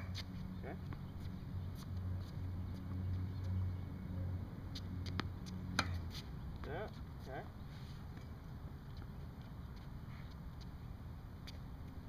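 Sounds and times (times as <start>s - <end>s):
tennis ball struck with racquet: 5.1s - 6.1s.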